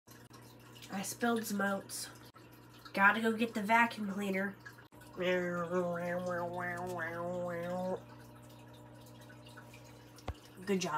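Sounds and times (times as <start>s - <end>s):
faint steady hum: 0.1s - 10.9s.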